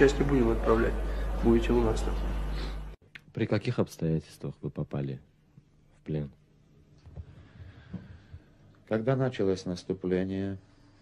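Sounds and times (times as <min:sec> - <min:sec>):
man breathing: 0:02.5 - 0:03.0, 0:07.2 - 0:08.7.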